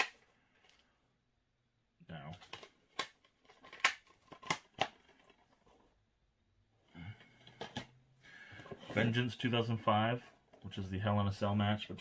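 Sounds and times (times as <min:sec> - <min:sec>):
plastic cases clicking: 0:02.3 - 0:05.5.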